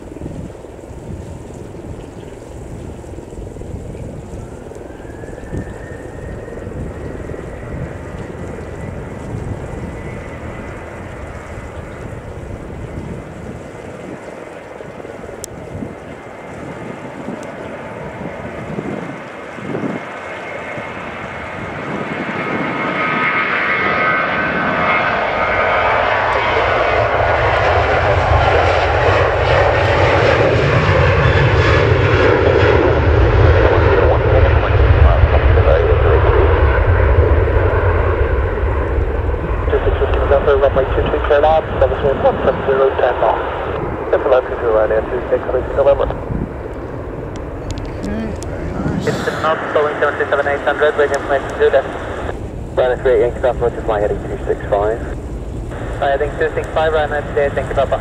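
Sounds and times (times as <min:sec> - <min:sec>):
deep rumble: 0:00.0 - 0:58.0
jet engines at takeoff power: 0:00.0 - 0:58.0.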